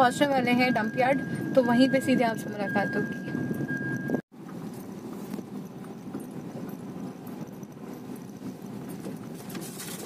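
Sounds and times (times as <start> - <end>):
car tyres rumbling on gravel: 4.4 - 10.0.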